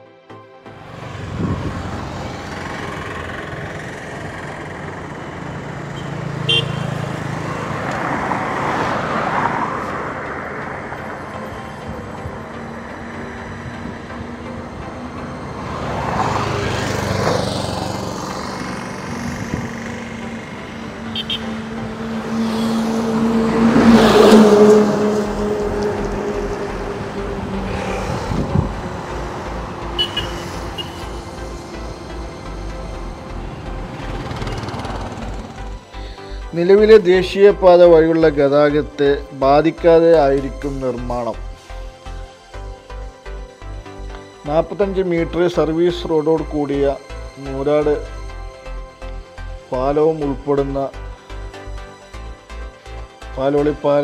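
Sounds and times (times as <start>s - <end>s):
highway traffic passing: 0.3s - 54.0s
low pulsing engine note: 0.7s - 8.0s, 11.0s - 36.5s
heavy vehicle engine: 0.7s - 36.5s.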